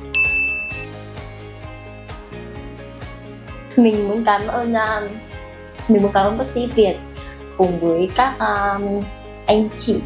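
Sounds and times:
bright ding: 0.0 - 1.0
soft background music: 0.0 - 10.0.

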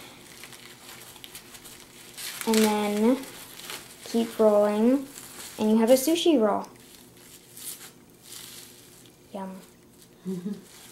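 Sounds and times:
plastic wrap crinkling: 0.0 - 10.9
bamboo mat rustling: 0.3 - 5.8, 6.8 - 9.1, 10.0 - 10.9.

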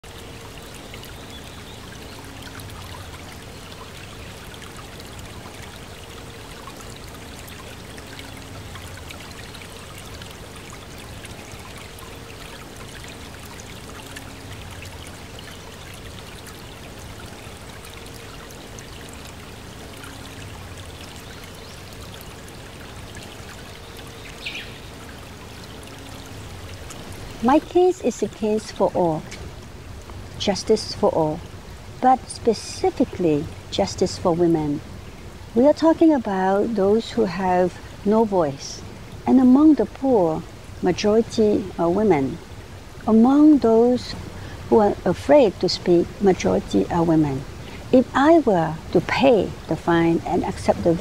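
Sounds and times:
water trickling: 0.0 - 51.0.

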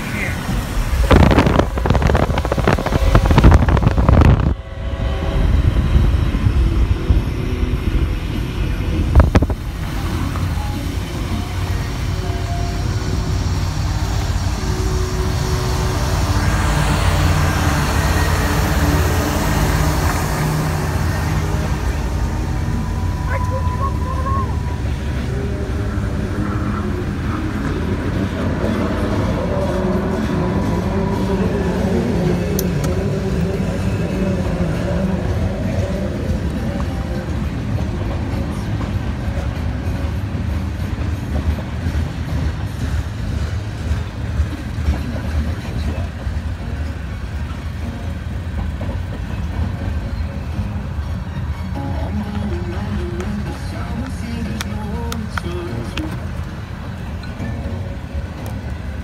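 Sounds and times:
locomotive diesel engines: 0.0 - 59.0
train cars rumbling over rails: 0.0 - 59.0.

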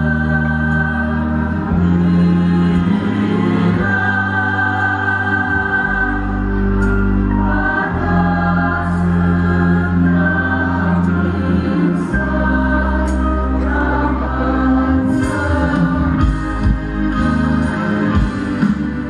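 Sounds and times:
choir singing slow song: 0.0 - 19.0.

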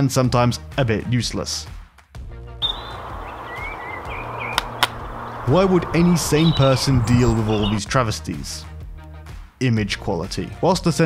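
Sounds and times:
music: 0.0 - 11.0
outdoor background noise: 2.6 - 7.8
birds chirping and whistling: 2.6 - 7.9.

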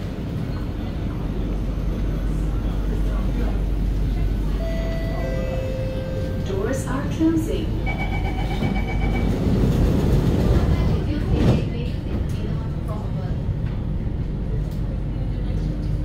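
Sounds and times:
train rumble: 0.0 - 16.0
door-closing warning beeps: 7.8 - 9.5.

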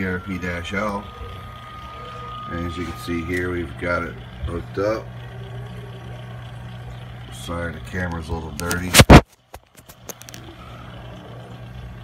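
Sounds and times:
finger rubbing camera lens: 8.7 - 9.2.

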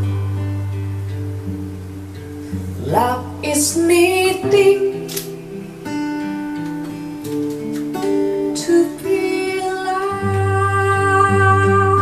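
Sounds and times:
acoustic guitar playing: 0.0 - 12.0
woman singing: 2.8 - 5.4, 8.4 - 12.0.

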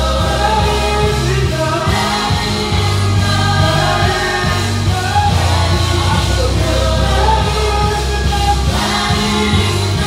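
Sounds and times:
bass: 0.0 - 10.0
gospel choir singing: 0.0 - 10.0
keyboard: 0.0 - 10.0.

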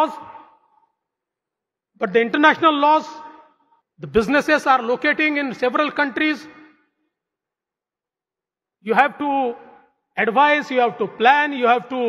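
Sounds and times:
man speaking with echo: 0.0 - 1.0, 2.0 - 7.0, 8.8 - 12.0.

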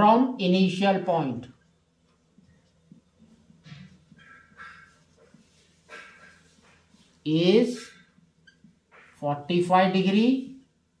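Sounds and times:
marker squeaking on whiteboard: 2.4 - 9.3.

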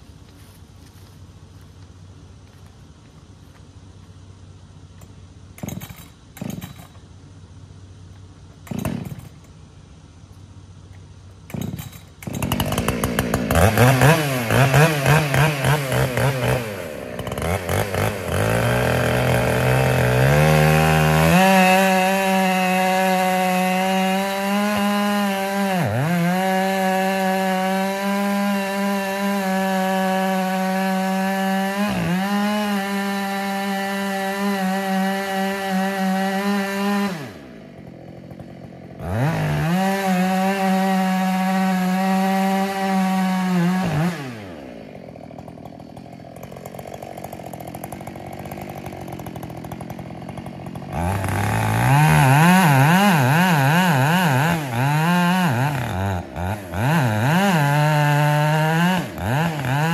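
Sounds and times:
chainsaw cutting wood: 5.0 - 7.1, 8.5 - 9.6, 11.4 - 59.9.

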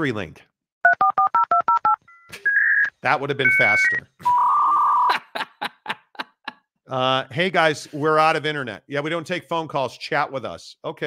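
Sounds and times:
electronic telephone beep: 0.9 - 4.6.

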